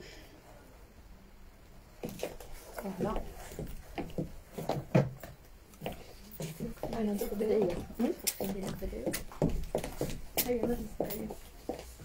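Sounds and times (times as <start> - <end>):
woman speaking: 2.8 - 3.4, 6.5 - 9.2, 10.4 - 11.4.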